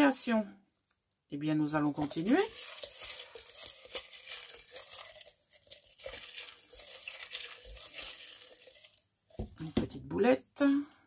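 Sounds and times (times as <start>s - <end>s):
paper slips crinkling and rustling: 1.8s - 9.8s.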